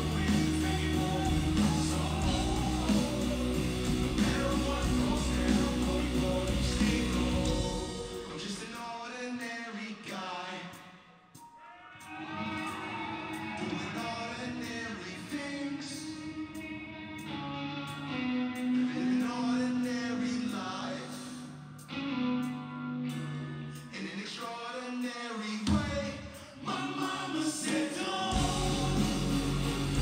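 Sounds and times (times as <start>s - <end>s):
live band music: 0.0s - 8.5s
voices singing long notes: 0.0s - 9.0s, 26.6s - 30.0s
drums: 0.0s - 10.8s, 25.5s - 30.0s
man singing lead vocal: 0.0s - 16.7s, 18.7s - 21.6s, 23.8s - 30.0s.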